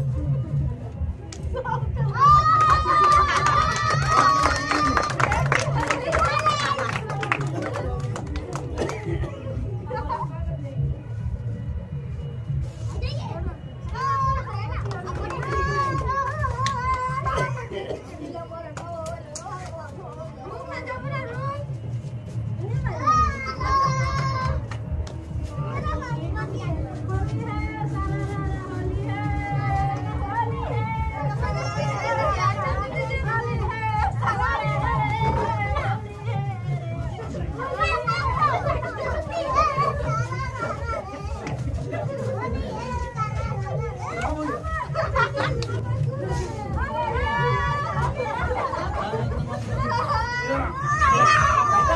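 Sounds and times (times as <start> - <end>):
people chattering excitedly: 0.0 - 51.9
children and adults shouting: 2.0 - 7.8, 13.9 - 17.6, 22.8 - 24.8, 28.2 - 51.9.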